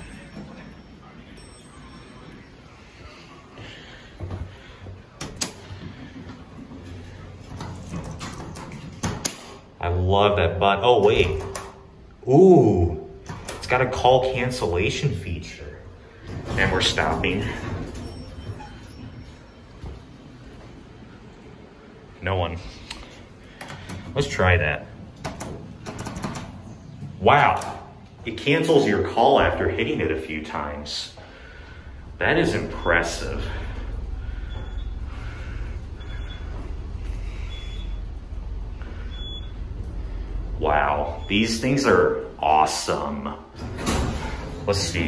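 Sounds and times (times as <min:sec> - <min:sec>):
low steady hum: 0:00.0 - 0:45.0
elevator buttons clicking: 0:25.1 - 0:26.7.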